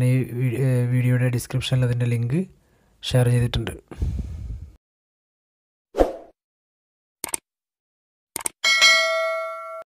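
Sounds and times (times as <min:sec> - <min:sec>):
bell ding: 0:08.6 - 0:09.9.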